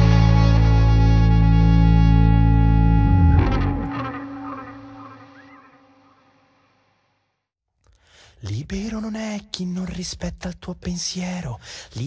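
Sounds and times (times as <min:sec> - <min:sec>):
rock band closing chord: 0:00.0 - 0:05.7.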